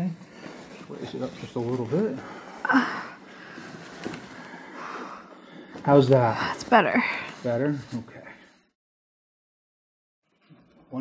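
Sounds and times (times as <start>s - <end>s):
pillow rustling and handling: 0.0s - 5.1s.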